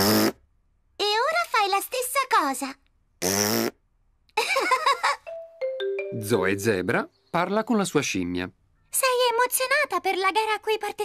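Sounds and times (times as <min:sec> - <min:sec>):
child blowing a buzzing raspberry: 0:00.0 - 0:00.4, 0:03.2 - 0:03.8
child speaking: 0:01.0 - 0:02.8.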